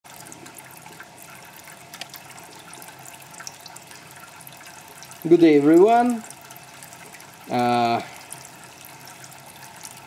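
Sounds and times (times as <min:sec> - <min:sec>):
liquid trickling into a jar: 0:00.1 - 0:10.0.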